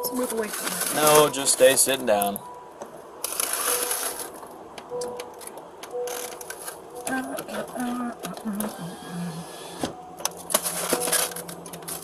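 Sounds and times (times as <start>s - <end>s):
rustling and clicking handling noise: 0.2s - 8.8s, 9.8s - 12.0s.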